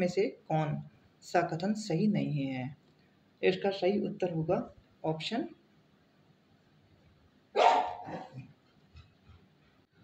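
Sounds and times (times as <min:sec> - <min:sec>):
dog barking: 0:07.6 - 0:08.5.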